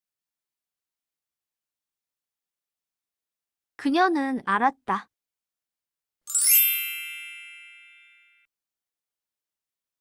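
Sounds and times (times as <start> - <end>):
bright bell-like chime: 6.3 - 8.5.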